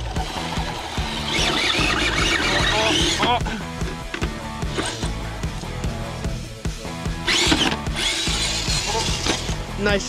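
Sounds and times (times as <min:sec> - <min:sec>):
electric motor whining: 0:00.0 - 0:09.8
background music with beat: 0:00.0 - 0:10.0.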